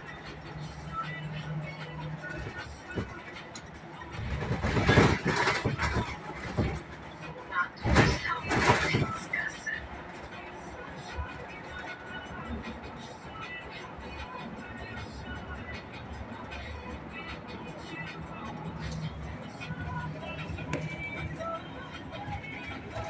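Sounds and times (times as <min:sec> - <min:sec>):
bus engine and road noise: 0:00.0 - 0:23.0.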